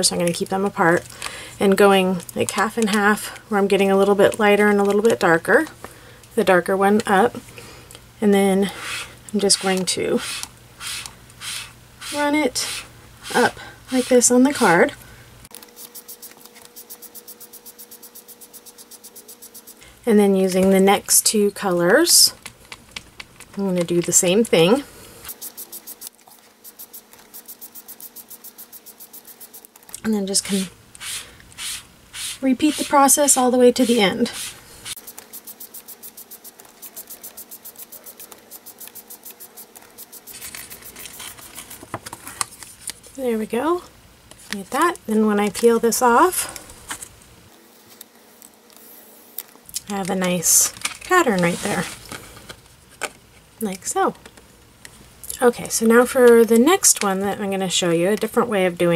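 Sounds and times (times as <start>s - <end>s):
sponge scratching on cardstock: 8.7s - 14.8s, 15.8s - 19.8s, 25.4s - 29.7s, 30.5s - 42.0s
paper rustling: 33.8s - 43.2s, 50.7s - 52.6s.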